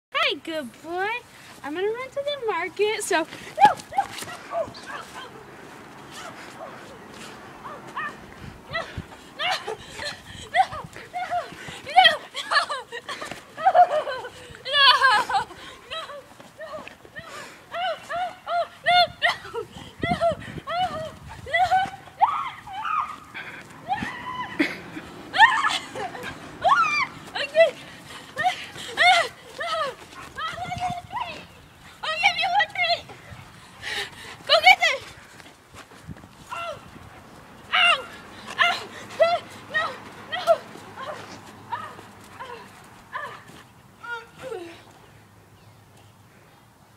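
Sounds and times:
person laughing in a high voice: 8.7s - 16.9s.

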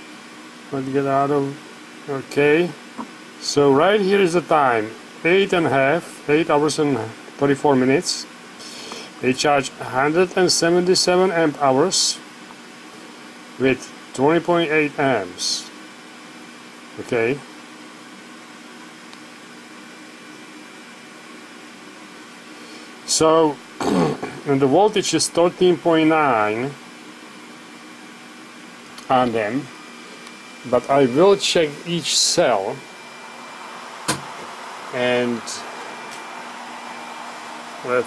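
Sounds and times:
faint hum: 0.0s - 38.0s
steady background hiss: 0.0s - 38.0s
steady fan whir: 0.0s - 38.0s
person speaking: 29.0s - 29.7s, 30.6s - 32.9s, 34.9s - 35.7s.

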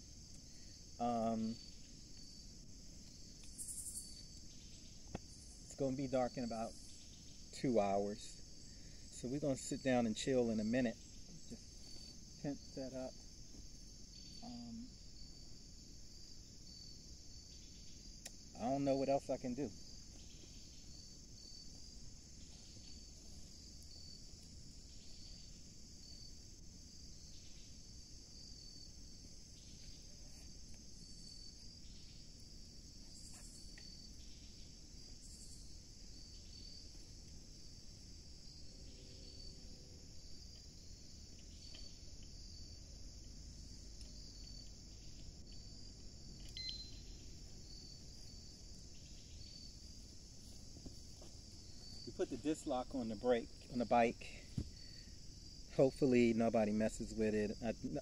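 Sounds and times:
crickets chirping: 0.0s - 58.0s.

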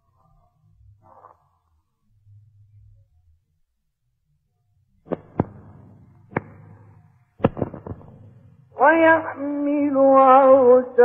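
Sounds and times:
sharp reverberant knocks: 5.1s - 9.6s.

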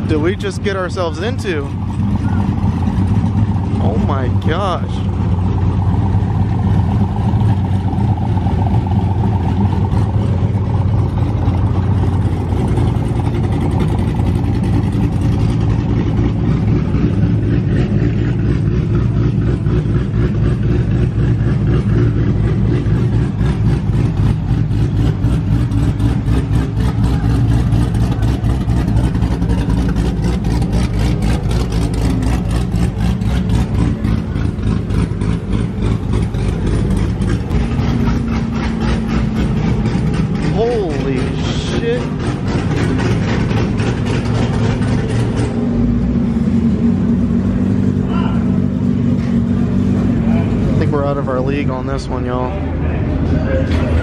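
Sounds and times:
car engines idling and revving: 0.0s - 54.0s.

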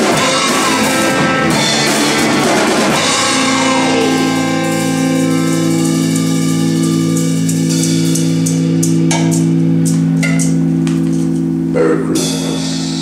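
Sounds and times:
drum hits: 0.0s - 11.4s
cymbal strikes: 0.0s - 11.5s
rock band playing: 0.0s - 13.0s.

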